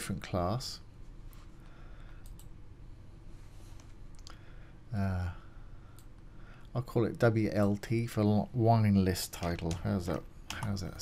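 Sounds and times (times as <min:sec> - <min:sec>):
low steady hum: 0:00.0 - 0:11.0
computer mouse clicks: 0:02.2 - 0:02.6, 0:09.4 - 0:10.8.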